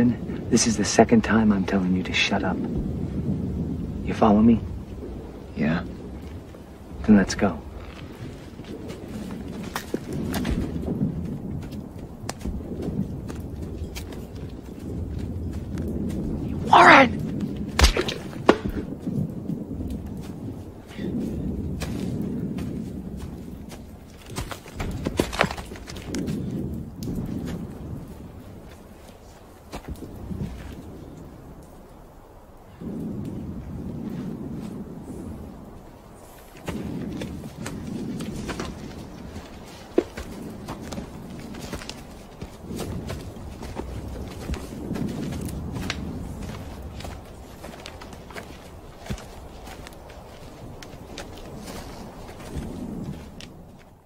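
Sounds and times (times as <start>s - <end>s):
footsteps through undergrowth: 7.6s - 16.6s, 17.2s - 31.0s, 36.2s - 54.0s.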